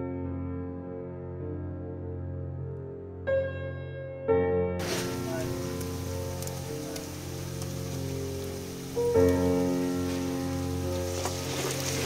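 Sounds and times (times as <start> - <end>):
background music with held notes: 0.0 - 12.0
onions sizzling in oil: 4.8 - 12.0.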